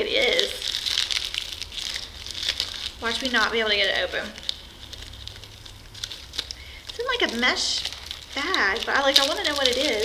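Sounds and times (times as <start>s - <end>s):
toy packaging crinkling: 0.0s - 10.0s.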